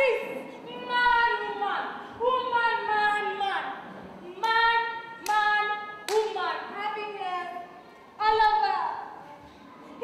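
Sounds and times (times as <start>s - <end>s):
sharp clap: 5.2s - 5.4s, 6.1s - 6.4s.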